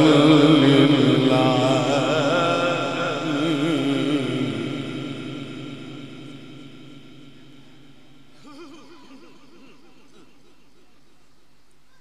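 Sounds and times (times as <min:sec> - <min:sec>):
recitation over loudspeaker: 0:00.0 - 0:12.0
reverberant echo: 0:00.0 - 0:12.0.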